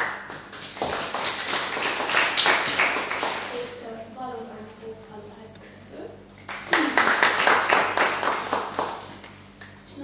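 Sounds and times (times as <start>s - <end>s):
small audience clapping: 0.0s - 3.8s, 6.5s - 9.8s.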